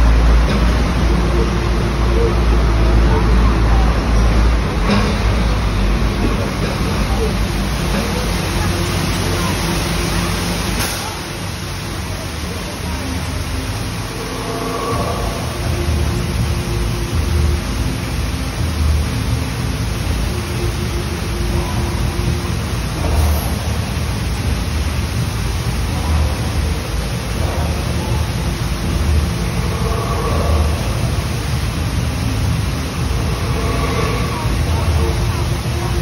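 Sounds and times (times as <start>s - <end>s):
deep rumble: 0.0s - 36.0s
water pouring down waterfall: 0.0s - 36.0s.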